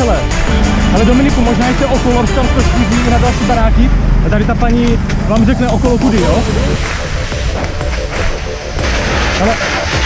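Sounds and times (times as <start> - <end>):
low rumble: 0.3 - 10.0.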